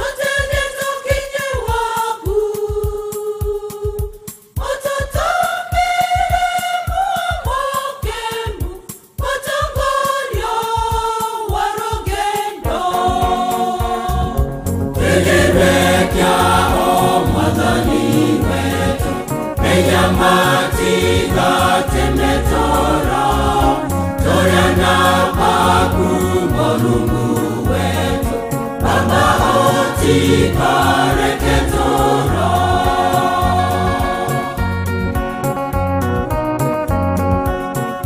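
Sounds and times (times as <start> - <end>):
gospel choir singing: 0.0 - 35.6
backing music with bass and beat: 0.0 - 38.0.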